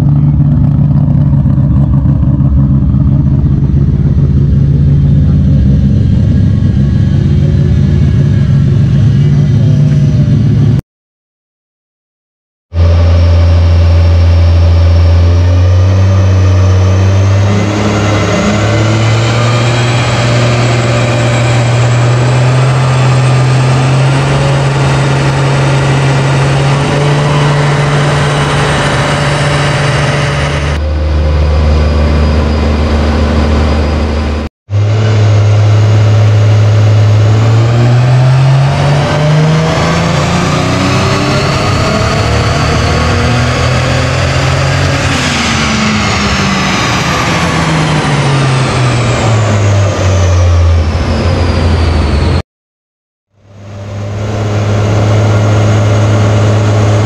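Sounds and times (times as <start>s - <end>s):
car engine revving on dynamometer: 12.8s - 52.4s, 53.5s - 57.0s.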